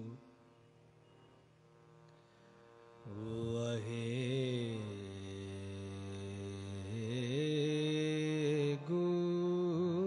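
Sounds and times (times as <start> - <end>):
man singing long held note: 0.0 - 0.6, 3.0 - 10.0
harmonium: 0.0 - 10.0.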